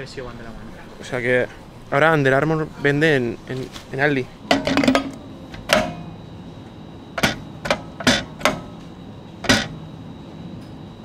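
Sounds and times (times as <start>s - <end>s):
dispensing machine clacks: 9.4s - 9.8s.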